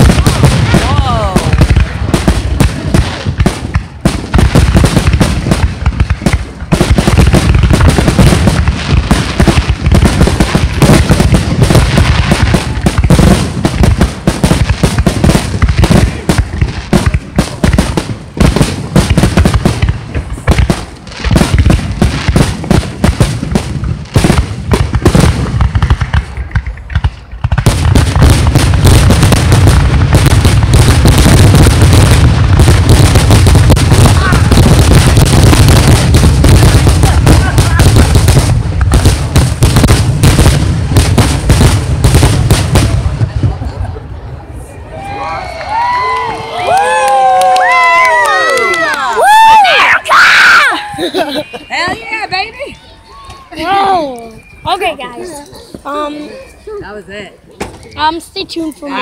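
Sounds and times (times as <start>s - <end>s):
firework shells bursting: 0.0s - 42.9s.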